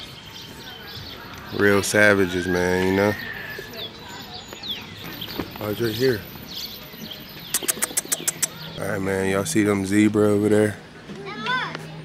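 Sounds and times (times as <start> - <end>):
man talking: 8.8 - 10.8.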